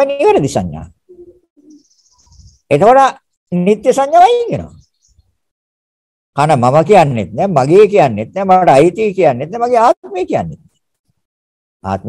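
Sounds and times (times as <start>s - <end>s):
man speaking: 0.0s - 1.0s, 2.7s - 4.8s, 6.4s - 10.7s.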